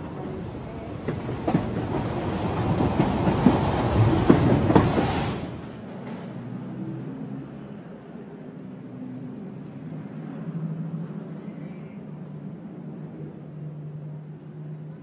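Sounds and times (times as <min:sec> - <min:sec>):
train wheels clattering: 0:00.0 - 0:06.3.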